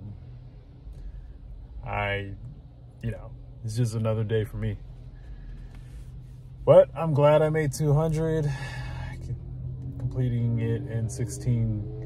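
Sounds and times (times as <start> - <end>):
car cabin hum: 0.0 - 12.0
man talking: 1.8 - 4.8, 6.6 - 9.4, 10.0 - 12.0.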